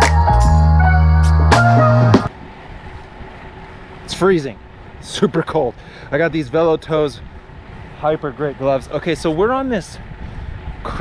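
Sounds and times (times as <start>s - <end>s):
background music: 0.0s - 2.3s
bicycle road noise: 2.3s - 11.0s
wind on microphone: 9.3s - 11.0s.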